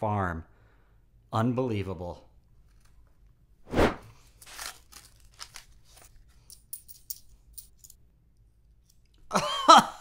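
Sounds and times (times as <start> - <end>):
paper crinkling: 4.2 - 6.3
paper wrapper ripping: 4.3 - 6.2.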